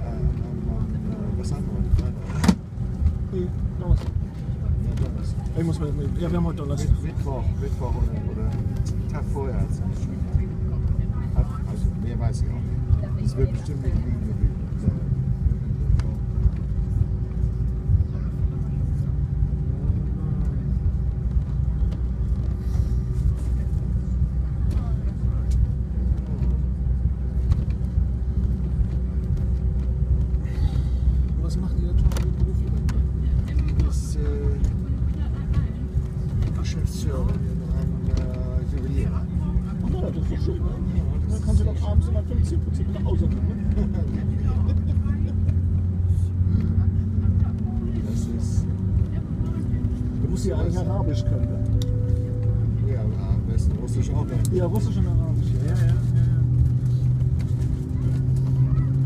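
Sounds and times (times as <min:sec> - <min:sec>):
faint passenger chatter: 0:00.0 - 0:59.0.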